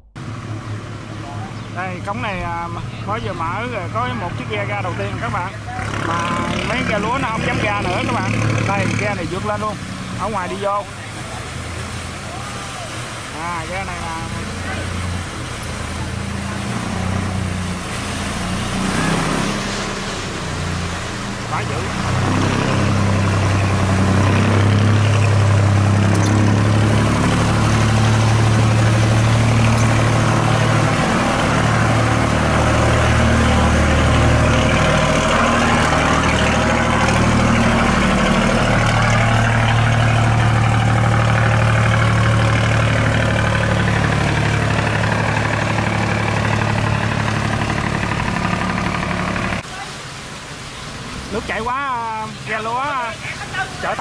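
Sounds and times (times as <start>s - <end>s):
boat engine humming: 0.0s - 54.0s
water rushing through sluice gate: 0.2s - 54.0s.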